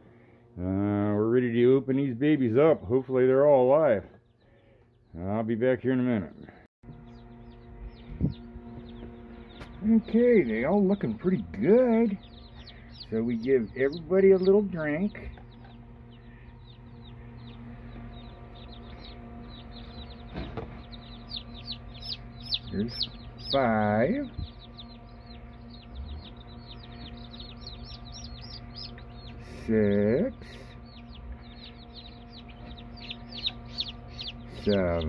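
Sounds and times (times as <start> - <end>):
steady low hum: 0.0 - 35.0
chicks peeping: 0.1 - 35.0.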